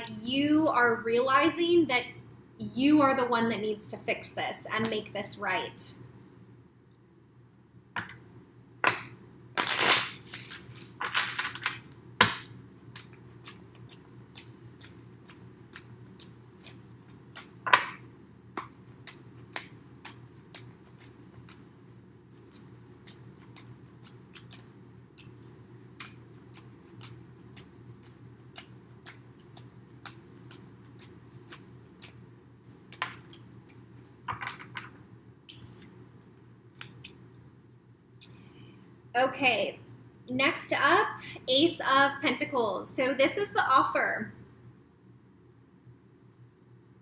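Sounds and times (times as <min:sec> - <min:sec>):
steady low hum: 0:00.0 - 0:47.0
cards shuffling: 0:09.6 - 0:11.8, 0:22.3 - 0:34.9.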